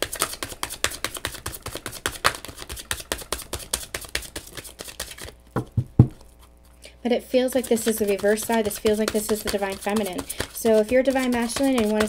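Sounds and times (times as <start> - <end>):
cards being shuffled by hand: 0.0 - 6.8, 7.4 - 12.0.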